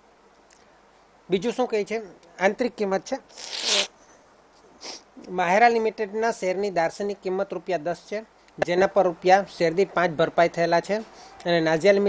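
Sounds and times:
sharp breath close to microphone: 11.1s - 11.4s.

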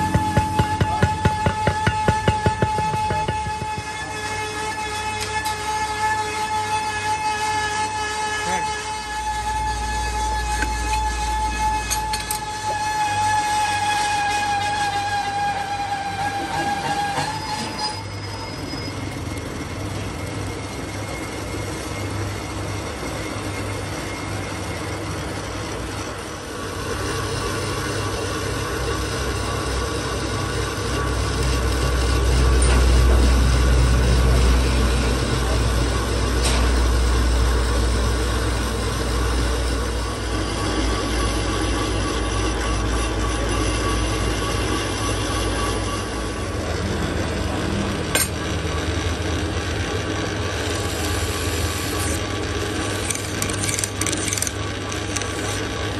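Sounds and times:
metal lathe running: 0.0s - 55.9s.

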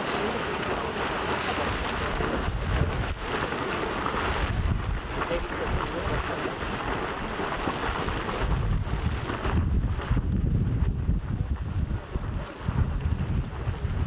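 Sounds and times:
wind buffeting microphone: 0.0s - 14.0s.

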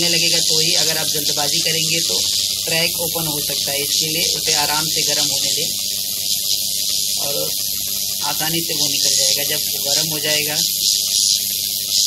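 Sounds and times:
hot-air blower hissing: 0.0s - 12.0s.

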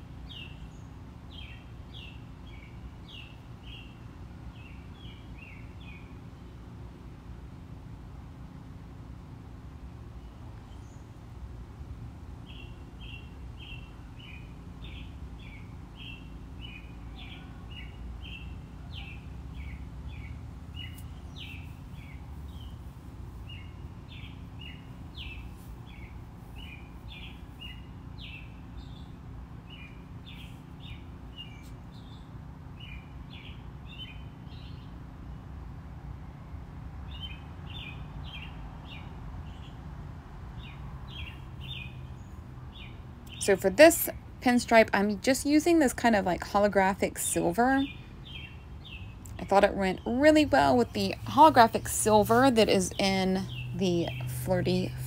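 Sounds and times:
steady low hum: 0.0s - 55.0s
bird chirping: 12.5s - 34.9s, 40.6s - 43.6s, 47.2s - 54.9s.

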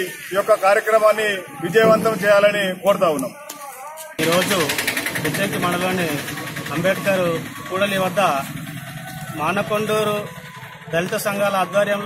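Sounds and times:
man speaking into microphones: 0.0s - 8.5s, 9.4s - 10.3s, 10.9s - 12.0s
small engine idling: 4.2s - 12.0s.

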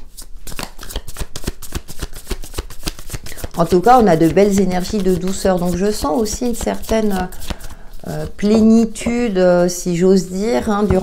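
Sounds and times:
cards being shuffled by hand: 0.0s - 9.2s.

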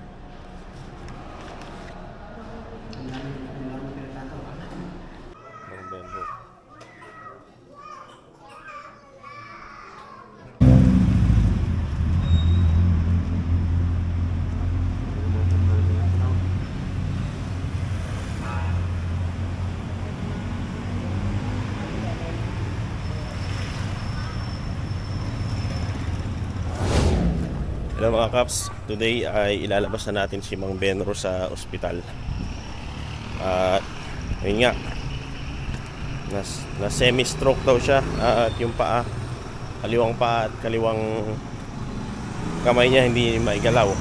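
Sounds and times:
faint indistinct voices: 0.0s - 10.6s.

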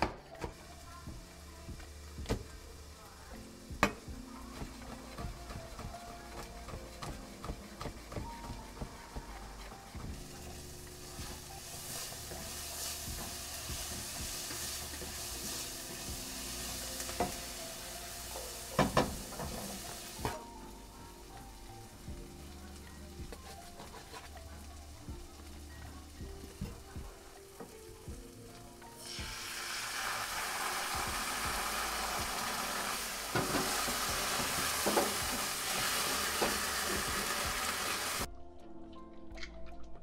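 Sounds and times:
onions sizzling in frying pan: 0.6s - 38.3s
spatula stirring: 4.4s - 18.7s, 23.3s - 24.6s.

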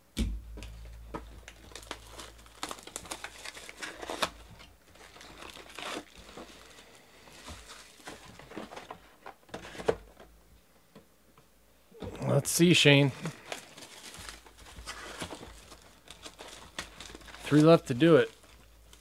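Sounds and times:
plastic shrink wrap crinkling: 0.6s - 9.2s, 12.8s - 19.0s.

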